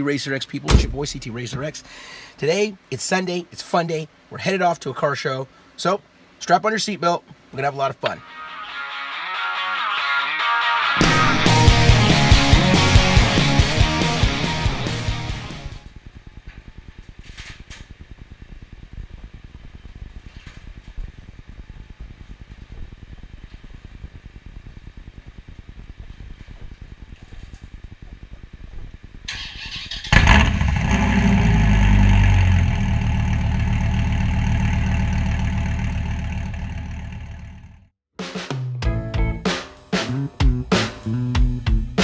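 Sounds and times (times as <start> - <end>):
car engine starting and idling: 29.2 - 37.9.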